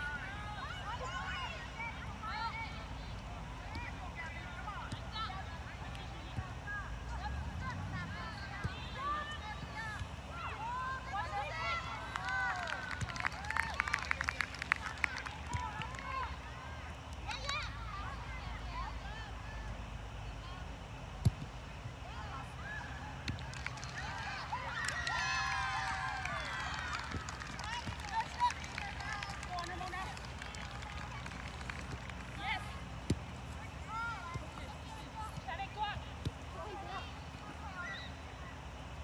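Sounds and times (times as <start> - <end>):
low background hum: 0.0 - 39.0
players calling and shouting: 0.0 - 39.0.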